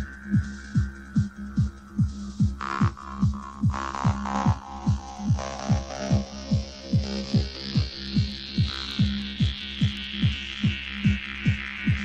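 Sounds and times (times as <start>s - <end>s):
pounding kick drum: 0.0s - 12.0s
steady low drone: 0.0s - 12.0s.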